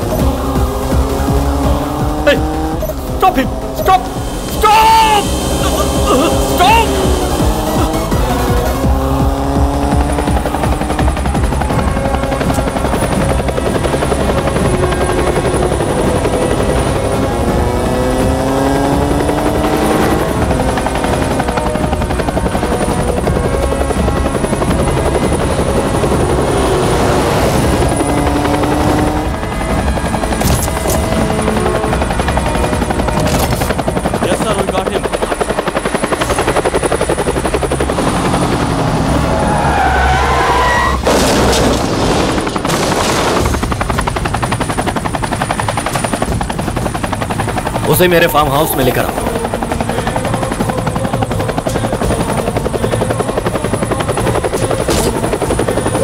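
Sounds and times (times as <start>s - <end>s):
motorcycle engine accelerating: 0.0s - 47.9s
helicopter rotor chopping: 0.0s - 56.0s.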